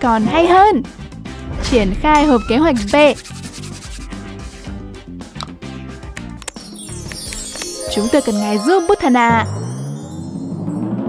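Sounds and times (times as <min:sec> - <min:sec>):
quiet background music: 0:00.0 - 0:10.2.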